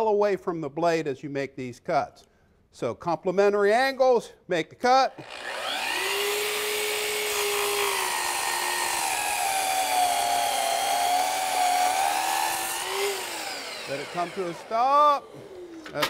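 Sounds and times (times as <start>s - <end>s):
miter saw cutting wood: 5.1s - 16.0s.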